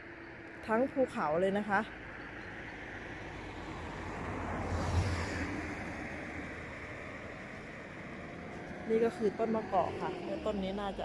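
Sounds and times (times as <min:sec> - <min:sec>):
vehicle passing on road: 0:00.0 - 0:11.0.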